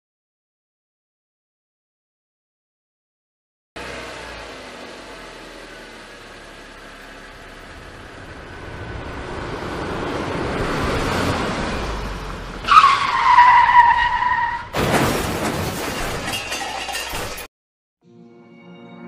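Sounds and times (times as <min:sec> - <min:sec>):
car driving: 0:03.8 - 0:14.8
tyres screeching: 0:12.6 - 0:14.8.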